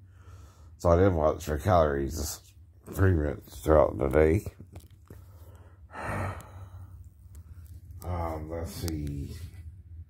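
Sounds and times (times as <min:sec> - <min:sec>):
faint low hum: 0:00.0 - 0:10.0
person breathing out: 0:05.2 - 0:07.0.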